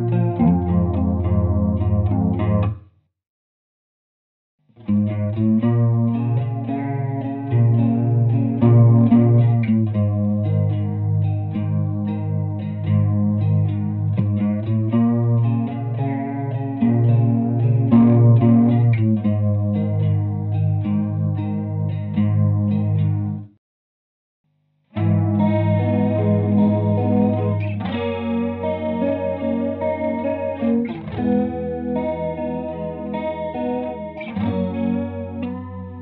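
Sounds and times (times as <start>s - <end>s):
electric guitar riff with chorus: 0.0s - 2.8s, 4.9s - 23.4s, 25.0s - 36.0s.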